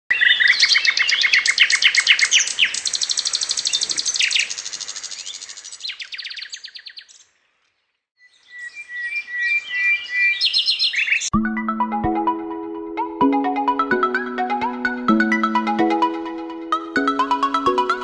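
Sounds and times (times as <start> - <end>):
birds chirping: 0.1 - 11.3.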